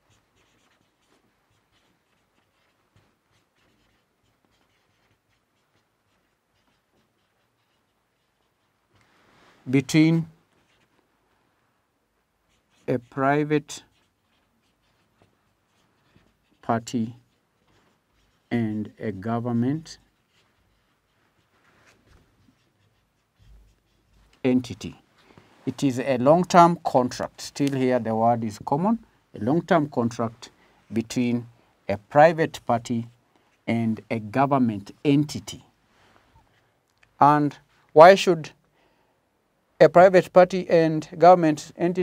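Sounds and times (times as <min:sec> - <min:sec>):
marker scratching on whiteboard: 0:00.0 - 0:09.1, 0:09.8 - 0:11.0, 0:12.3 - 0:25.1.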